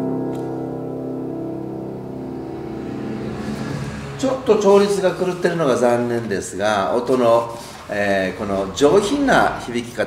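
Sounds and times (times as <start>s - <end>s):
piano chord ringing out: 0.0s - 6.1s.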